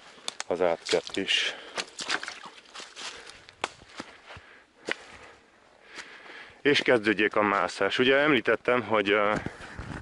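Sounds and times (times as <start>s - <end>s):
footsteps on stones and dry leaves: 0.0s - 8.0s.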